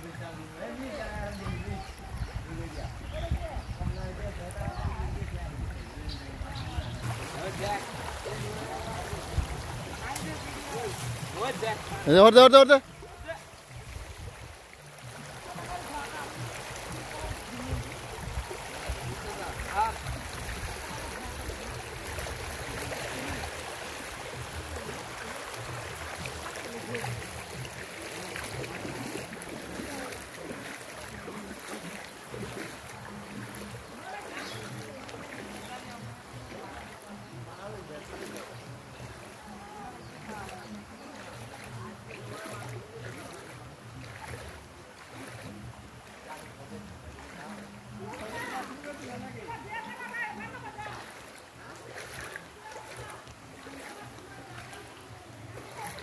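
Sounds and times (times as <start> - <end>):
faint distant voices: 0.0 - 56.0
floodwater rushing: 0.0 - 56.0.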